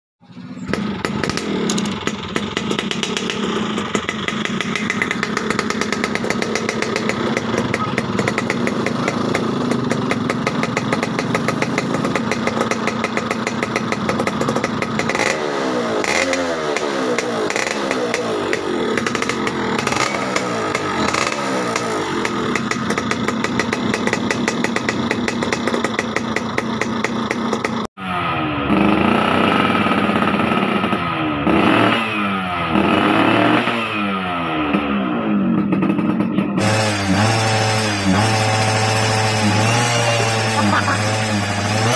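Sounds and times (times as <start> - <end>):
second motorcycle revving: 0.2 - 41.9
two-stroke motorcycle engine revving: 0.2 - 41.9.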